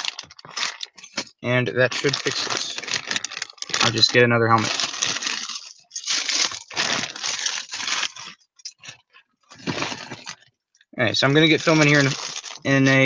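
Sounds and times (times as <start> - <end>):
plastic bag crinkling: 0.0 - 10.5, 11.2 - 13.0.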